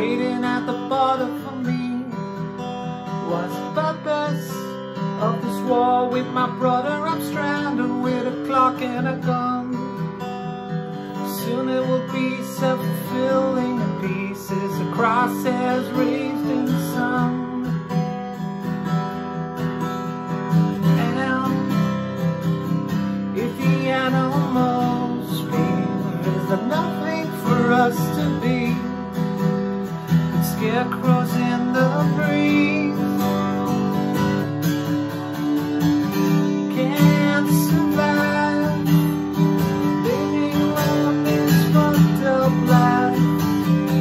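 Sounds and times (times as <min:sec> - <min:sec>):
acoustic guitar strumming chords: 0:00.0 - 0:44.0.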